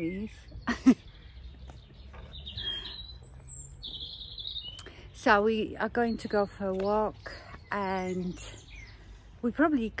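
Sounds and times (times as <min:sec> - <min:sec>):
songbirds singing: 0:00.0 - 0:10.0.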